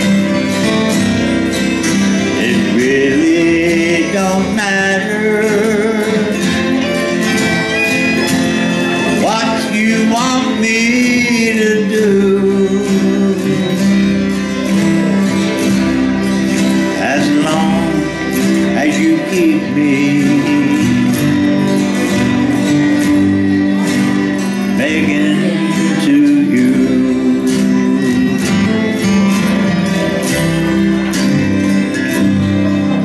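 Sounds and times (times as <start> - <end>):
acoustic guitars strumming: 0.0 - 33.0
man singing: 2.2 - 7.5, 8.9 - 14.5, 16.8 - 22.0, 23.7 - 31.2.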